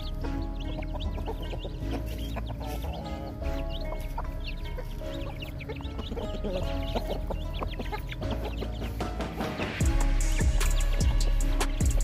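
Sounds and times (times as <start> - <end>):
background music: 0.0 - 12.0
chickens clucking: 0.0 - 12.0
chicks peeping: 0.0 - 12.0.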